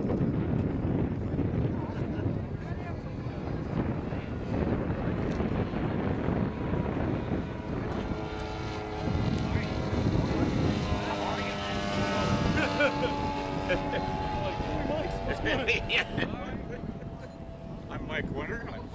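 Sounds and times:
model airplane engine: 0:00.0 - 0:18.9
noisy background: 0:00.0 - 0:18.9.

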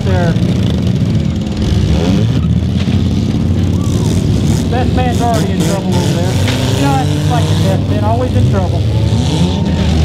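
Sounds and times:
car engines rumbling: 0:00.0 - 0:10.0.

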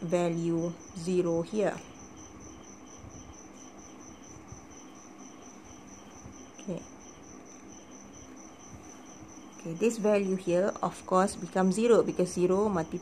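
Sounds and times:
cricket chirping: 0:00.0 - 0:13.0.

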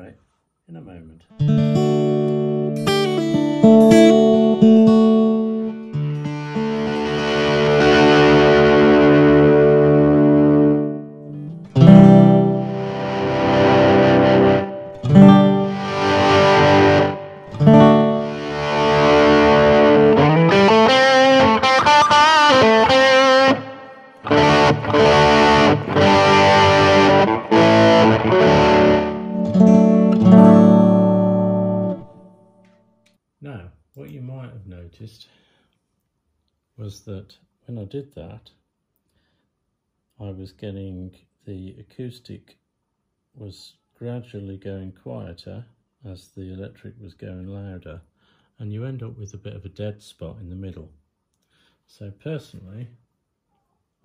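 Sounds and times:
guitar strumming chords: 0:01.4 - 0:32.7.

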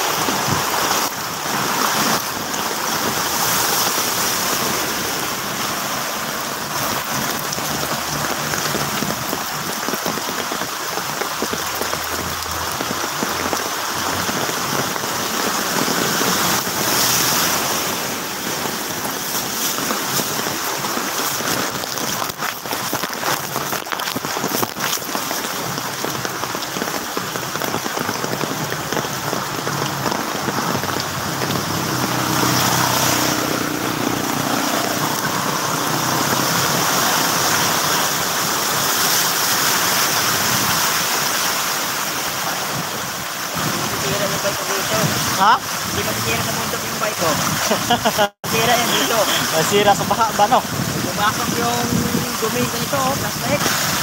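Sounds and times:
steady rain: 0:00.0 - 0:54.0
tyres splashing through floodwater: 0:00.0 - 0:54.0.

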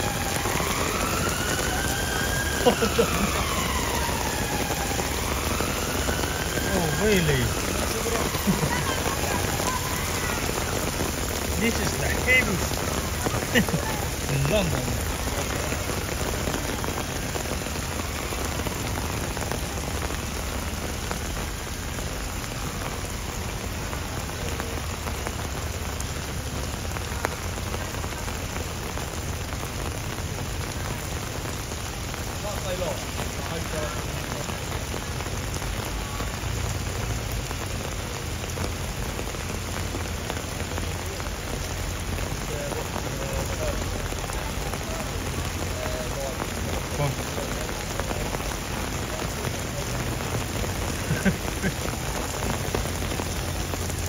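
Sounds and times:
heavy rain falling: 0:00.0 - 0:54.0.

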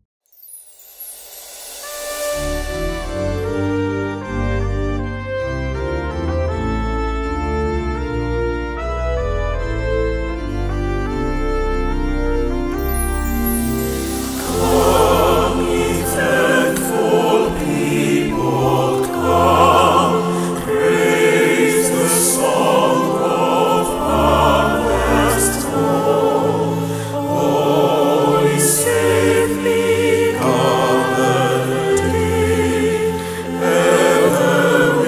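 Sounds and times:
organ playing: 0:01.8 - 0:35.0
choir singing a hymn: 0:12.8 - 0:35.0.

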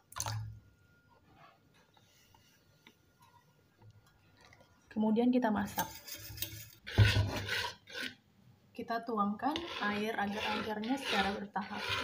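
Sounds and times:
metal utensil scraping cookware: 0:09.5 - 0:12.0.

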